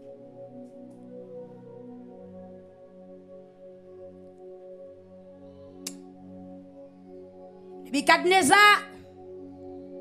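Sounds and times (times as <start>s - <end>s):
sustained ambient keyboard chord: 0.0s - 10.0s.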